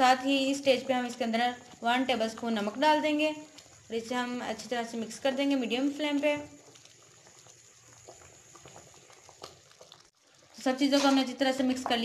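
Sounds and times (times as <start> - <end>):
curry bubbling in a pan: 0.0 - 12.0.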